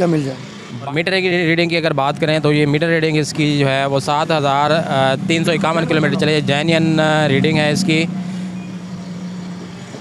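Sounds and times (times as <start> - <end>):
low engine hum: 1.3 - 10.0.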